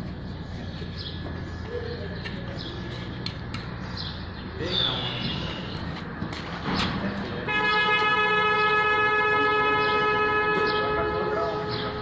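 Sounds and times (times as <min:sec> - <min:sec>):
vehicle horn blast: 0:07.5 - 0:12.0.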